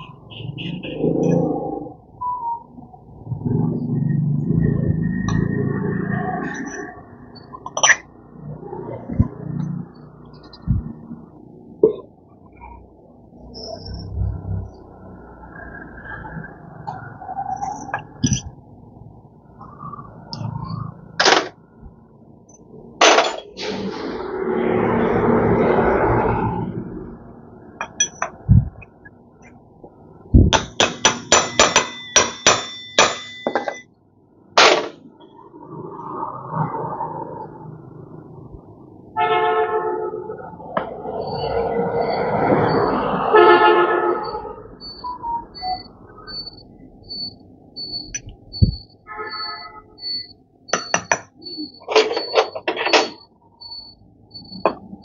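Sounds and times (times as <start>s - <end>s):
metal tools clinking: 7.7s - 8.0s, 23.0s - 23.5s, 27.8s - 28.4s, 30.6s - 33.8s, 51.8s - 53.2s
faint high beep: 44.2s - 55.0s.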